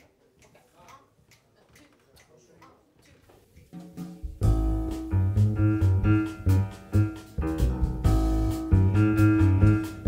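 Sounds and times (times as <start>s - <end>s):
faint count-in ticks: 0.0s - 3.7s.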